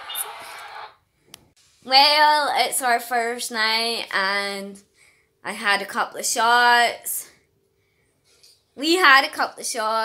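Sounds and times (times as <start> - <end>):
woman's voice: 1.8 - 7.4, 8.8 - 10.0.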